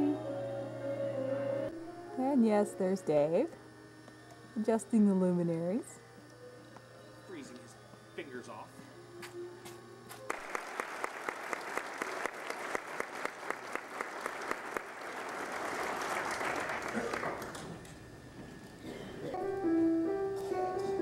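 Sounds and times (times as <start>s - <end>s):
piano sustained notes: 0.0s - 9.6s, 19.3s - 21.0s.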